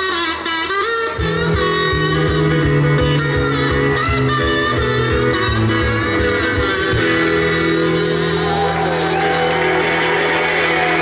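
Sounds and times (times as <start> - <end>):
bass and drum beat: 1.0 - 11.0.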